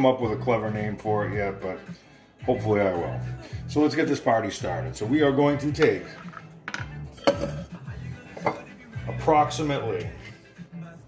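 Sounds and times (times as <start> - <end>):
glassware clinking on stone counter: 5.8 - 7.7, 8.4 - 8.7.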